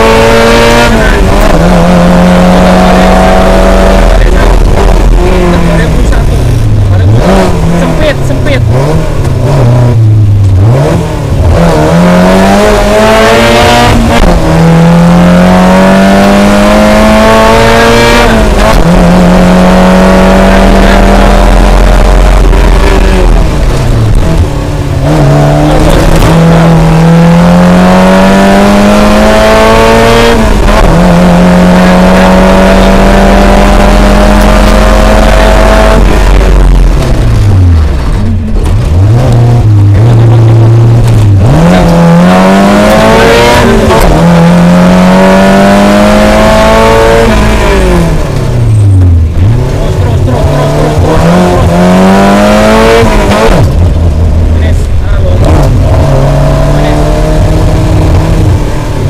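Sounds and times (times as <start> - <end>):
car engine revving: 0.0 - 59.0
gear changes: 0.0 - 59.0.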